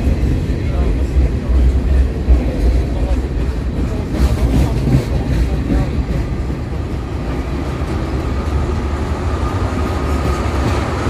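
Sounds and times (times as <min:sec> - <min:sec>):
steel wheels rumbling on rail: 0:00.0 - 0:11.0.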